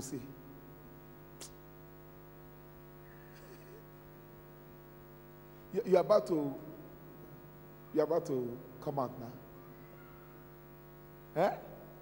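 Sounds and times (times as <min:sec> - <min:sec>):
faint electrical hum: 0:00.0 - 0:12.0
man speaking: 0:05.7 - 0:06.7, 0:11.3 - 0:11.8.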